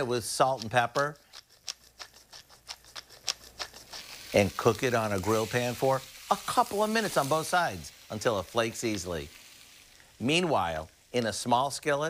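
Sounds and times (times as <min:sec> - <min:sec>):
pepper grinder clicking: 0:00.0 - 0:05.2.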